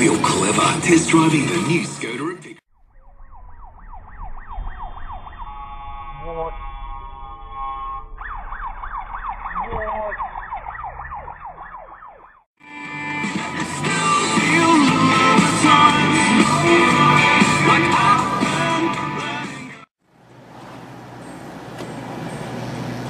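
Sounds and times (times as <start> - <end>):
music: 0.0 - 2.6, 12.6 - 19.9
ambulance siren yelping: 3.0 - 12.5.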